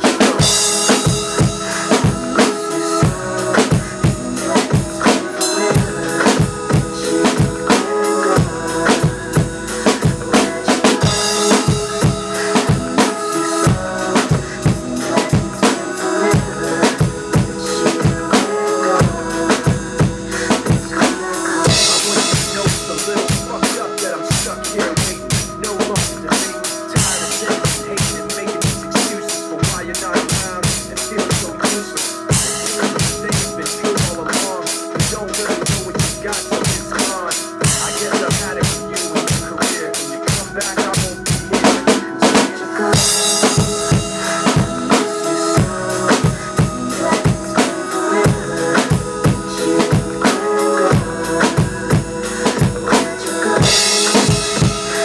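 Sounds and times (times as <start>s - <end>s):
drum kit hip-hop beat: 0.0s - 55.0s
recorded backing music: 0.0s - 55.0s.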